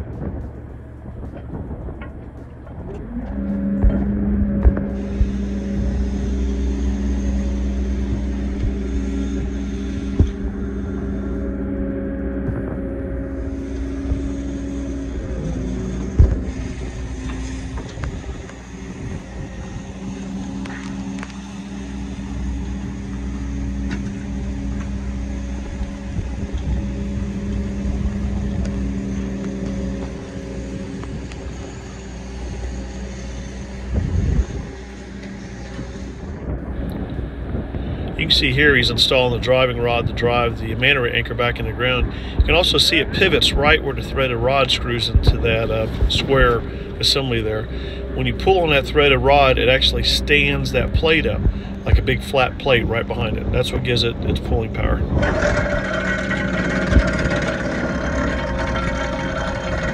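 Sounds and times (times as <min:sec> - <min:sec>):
excavator engine and hydraulics: 0:00.0 - 0:59.9
steady multi-tone hum: 0:00.0 - 0:59.9.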